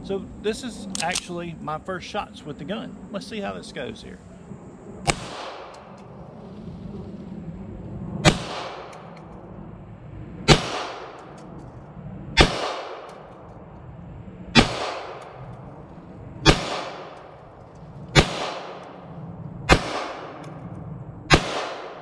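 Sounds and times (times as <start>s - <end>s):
pistol shots with echo: 5.0s - 5.8s, 8.2s - 8.9s, 10.5s - 11.2s, 12.4s - 13.2s, 14.5s - 15.4s, 16.4s - 17.3s, 18.1s - 18.9s, 19.7s - 20.4s, 21.3s - 22.0s.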